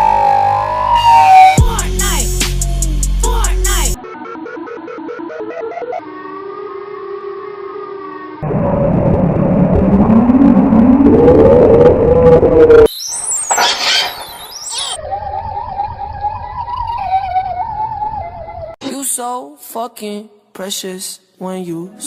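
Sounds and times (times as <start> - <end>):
siren-like sweeps: 0.0 - 1.6, 4.0 - 18.8
wavering whistle-like tone: 0.0 - 1.6, 10.0 - 18.8
noisy rising glide: 4.0 - 18.7.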